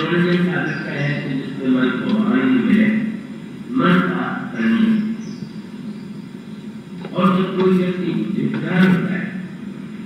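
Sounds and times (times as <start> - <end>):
man speaking: 0.0 - 5.0, 7.0 - 9.5.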